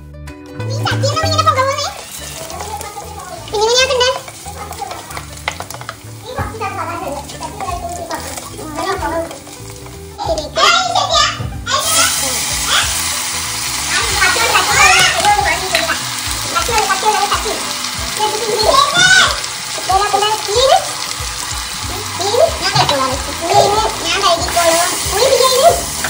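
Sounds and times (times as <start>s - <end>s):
food sizzling in a clay pot: 0.6s - 26.0s
wooden spatula stirring: 1.6s - 10.5s
background music with singing: 2.4s - 19.0s.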